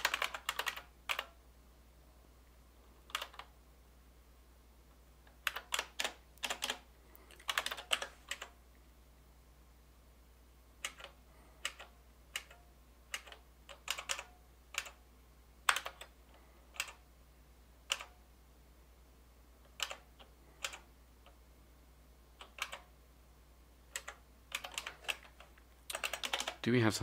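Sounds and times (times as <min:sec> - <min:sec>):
computer keyboard keystrokes: 0:00.0 - 0:01.4, 0:03.1 - 0:03.5, 0:05.3 - 0:08.6, 0:10.8 - 0:15.0, 0:15.7 - 0:16.1, 0:16.7 - 0:17.0, 0:17.9 - 0:18.2, 0:19.7 - 0:20.9, 0:22.4 - 0:22.9, 0:23.9 - 0:26.6
faint low steady hum: 0:00.0 - 0:27.0.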